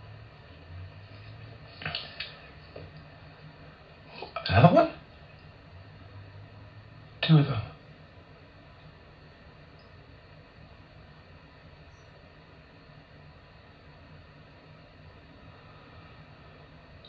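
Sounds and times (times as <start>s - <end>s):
background hiss: 0.0s - 17.0s
low hum: 0.0s - 17.0s.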